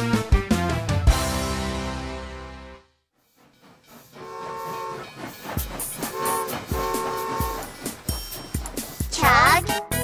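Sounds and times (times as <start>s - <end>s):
cartoon train whistle tooting: 4.2s - 5.1s, 6.0s - 7.7s.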